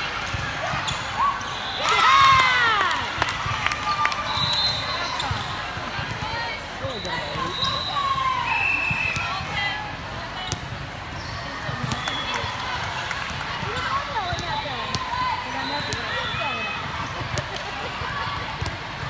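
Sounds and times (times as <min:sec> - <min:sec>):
many overlapping voices: 0:00.0 - 0:19.0.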